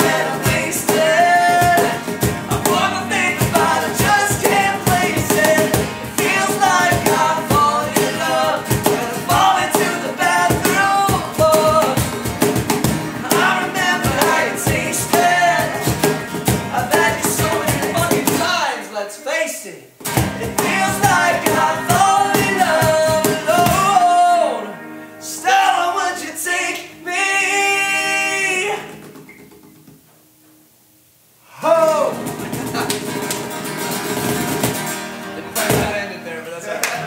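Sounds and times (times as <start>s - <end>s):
man singing: 0.0s - 12.2s, 13.2s - 19.1s, 20.4s - 29.0s
electric guitar: 0.0s - 18.4s, 20.1s - 27.4s
cajon: 0.0s - 18.6s, 20.0s - 23.9s, 28.7s - 30.2s, 31.8s - 36.1s
strummed acoustic guitars: 0.0s - 18.7s, 20.0s - 30.0s, 31.6s - 37.0s.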